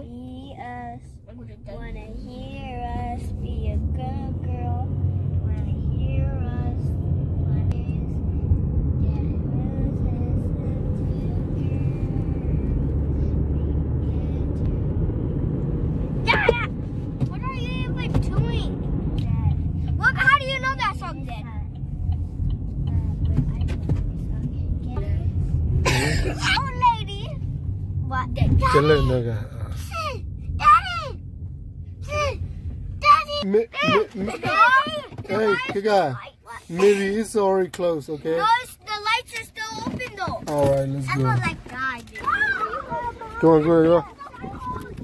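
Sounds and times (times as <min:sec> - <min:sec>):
road and engine rumble: 0:00.0 - 0:45.0
bursts of voices: 0:41.1 - 0:45.0.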